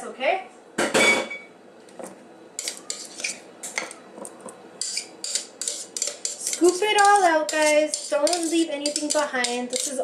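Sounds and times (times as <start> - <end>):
metal spoon scraping bowl: 2.6 - 4.0, 4.8 - 10.0.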